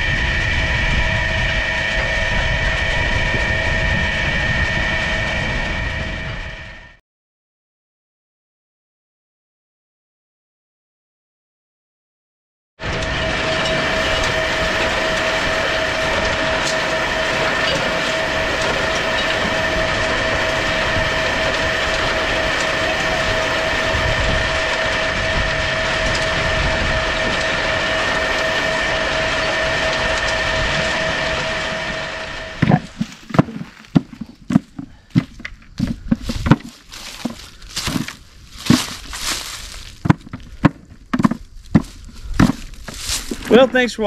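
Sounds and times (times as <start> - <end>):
hulling machine rattling and whining: 0.0 - 7.0, 12.8 - 43.9.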